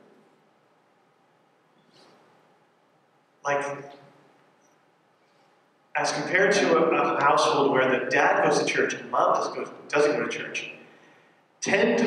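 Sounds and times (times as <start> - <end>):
person speaking: 3.4 - 4.2, 6.0 - 10.9, 11.6 - 12.0.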